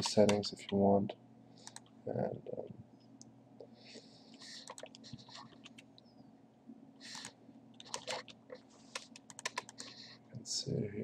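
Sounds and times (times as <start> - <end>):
steady low hum: 0.0 - 11.0
mouse clicking: 1.6 - 1.9, 4.6 - 5.8, 7.1 - 9.9
keyboard typing: 4.6 - 5.8, 7.1 - 10.0.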